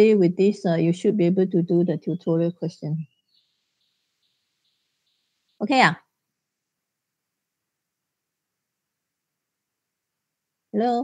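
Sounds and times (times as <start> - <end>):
faint high hiss: 3.1 - 11.0.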